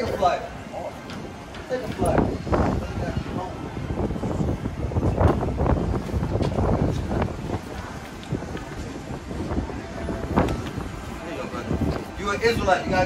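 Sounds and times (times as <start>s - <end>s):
city street noise: 0.0s - 13.0s
wind rumbling on microphone: 0.0s - 13.0s.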